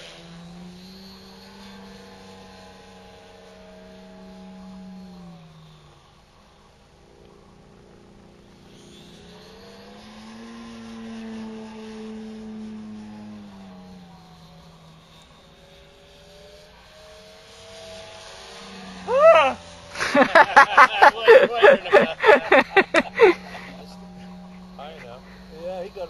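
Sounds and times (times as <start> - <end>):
model plane engine droning: 0.0 - 26.0
loud voice-like call: 19.1 - 19.6.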